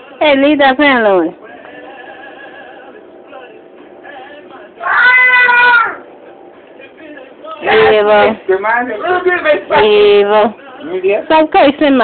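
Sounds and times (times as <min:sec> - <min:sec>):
cat meowing: 0:04.8 - 0:06.0.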